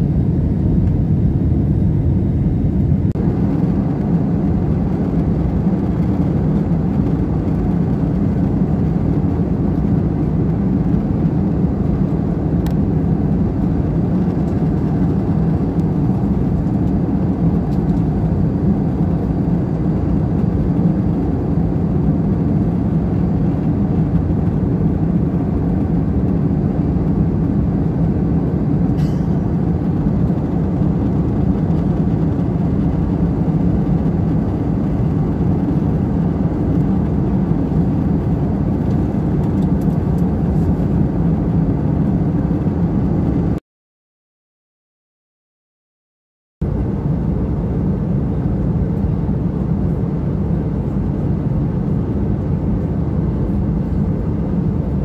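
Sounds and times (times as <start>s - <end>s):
jet cabin engine roar: 0.0s - 43.6s, 46.6s - 55.0s.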